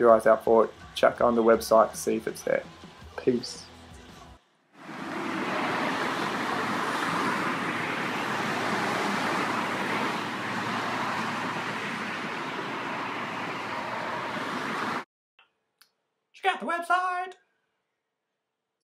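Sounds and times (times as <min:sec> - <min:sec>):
road traffic rushing past: 0:04.8 - 0:15.0.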